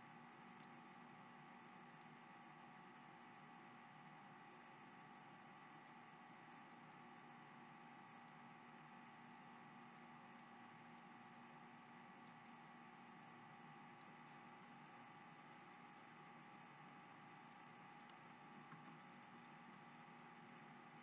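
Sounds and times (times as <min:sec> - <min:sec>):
faint electrical hum: 0:00.0 - 0:21.0
faint ticks: 0:00.3 - 0:02.8, 0:03.4 - 0:21.0.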